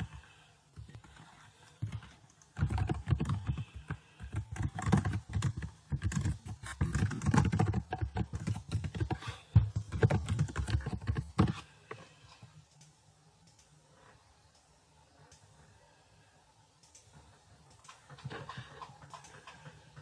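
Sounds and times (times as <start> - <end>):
typing on computer keyboard: 1.7 - 11.6.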